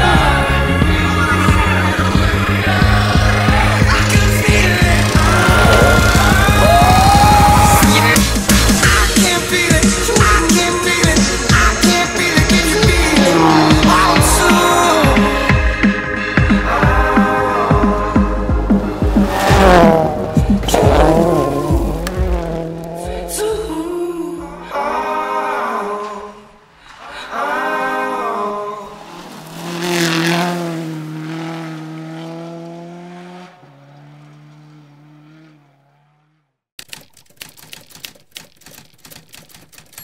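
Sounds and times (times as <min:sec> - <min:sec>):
music: 0:00.0 - 0:22.4, 0:23.0 - 0:26.4
rally car engines revving: 0:00.0 - 0:24.7, 0:25.8 - 0:36.6
rapid typewriter-like clicking: 0:36.8 - 0:40.0.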